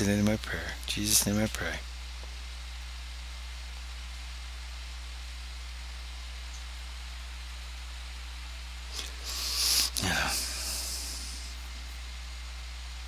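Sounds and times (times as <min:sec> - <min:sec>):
low electrical hum with hiss: 0:00.0 - 0:13.0.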